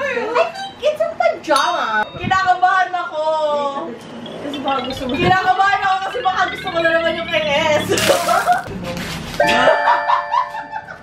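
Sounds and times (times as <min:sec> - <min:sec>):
wrapping paper tearing: 0:08.0 - 0:08.7.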